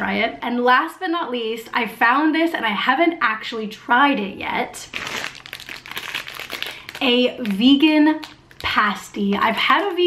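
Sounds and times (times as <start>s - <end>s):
plastic packaging crinkling: 4.8s - 10.0s.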